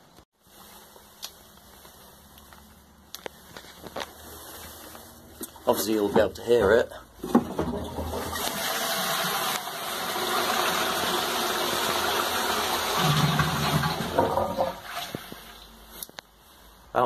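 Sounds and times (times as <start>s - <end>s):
toilet cistern flushing: 7.2s - 15.8s.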